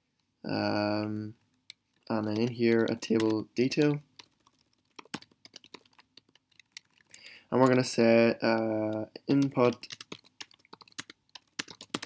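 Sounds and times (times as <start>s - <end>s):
computer keyboard typing: 1.9s - 12.0s.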